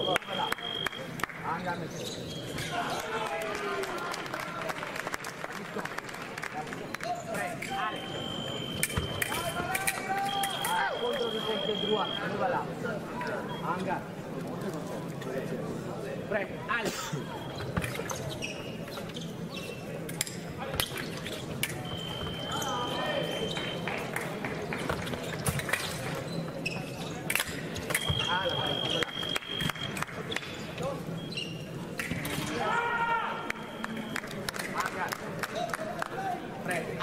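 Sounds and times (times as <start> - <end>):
scoring machine beep: 7.8 - 9.6, 10.2 - 12.4, 21.8 - 23.9, 28.0 - 30.0.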